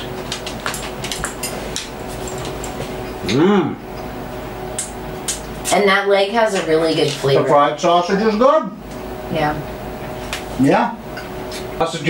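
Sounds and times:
kitchen room hum: 0.0 - 12.0.

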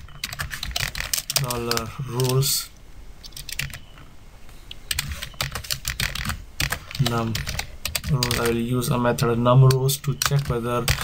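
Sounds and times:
typing on computer keyboard: 0.1 - 2.4, 3.2 - 3.8, 4.9 - 8.6.

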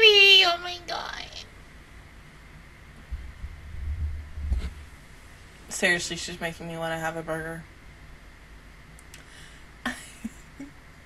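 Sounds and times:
microphone handling noise: 3.0 - 4.9
low muffled rumbling thumps: 3.0 - 5.0.

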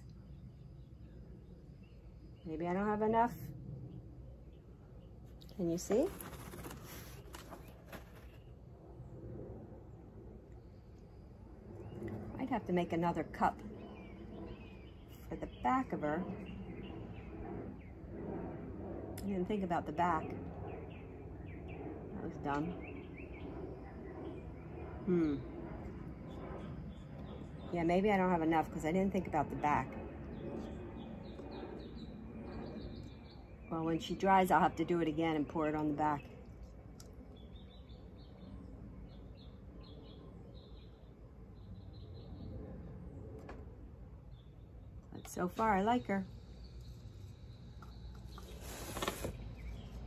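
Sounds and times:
low outdoor background: 0.0 - 50.0.

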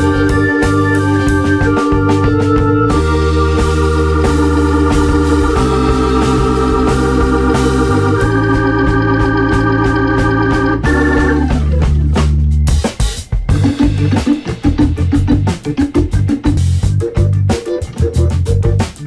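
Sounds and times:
held chords over low bass: 0.0 - 12.9, 13.5 - 19.0
drum hits: 0.0 - 19.0.

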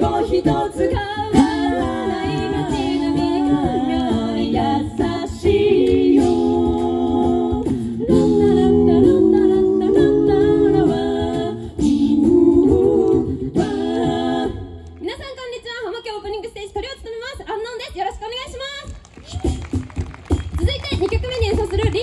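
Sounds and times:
a cappella group singing: 0.0 - 15.0.

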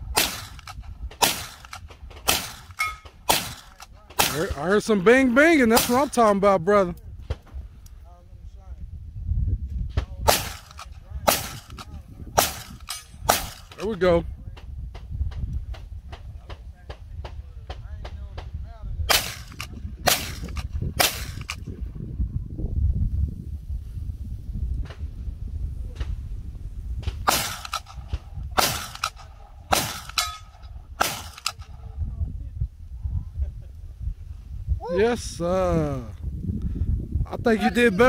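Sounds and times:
rifle shots: 0.0 - 4.8, 5.6 - 6.3, 10.3 - 13.9, 19.1 - 21.6, 27.2 - 31.8
wind rumble on microphone: 0.0 - 38.0.

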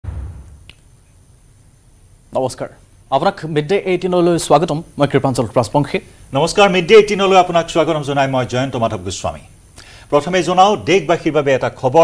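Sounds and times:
deep low hit: 0.0 - 0.8.

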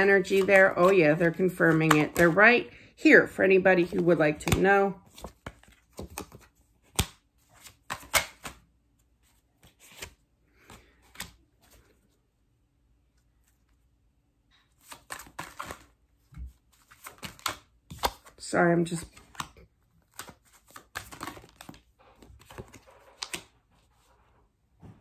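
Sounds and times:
cards being shuffled: 0.0 - 2.6, 3.8 - 8.6, 9.2 - 12.0, 14.7 - 24.1.

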